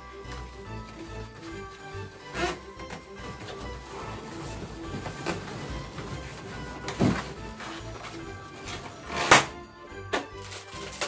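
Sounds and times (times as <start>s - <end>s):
background music: 0.0s - 11.0s
balloons rubbing and squeaking: 0.3s - 9.6s.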